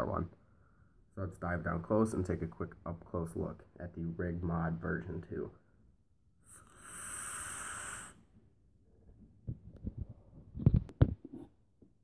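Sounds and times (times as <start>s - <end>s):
airy hiss of vape drag: 6.4s - 8.3s.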